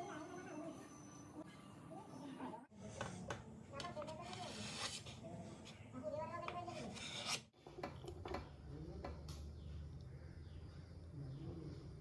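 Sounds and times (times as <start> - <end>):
knife scraping on plate: 6.6 - 7.5.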